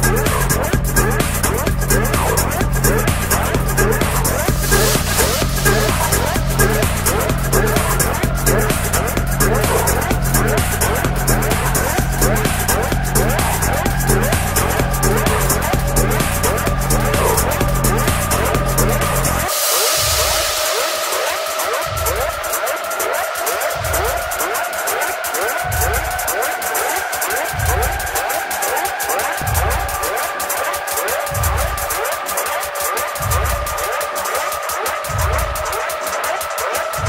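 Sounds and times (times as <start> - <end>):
rising synth tones: 0.0 - 37.0
techno beat and bass: 0.0 - 37.0
wash of hiss: 3.2 - 37.0.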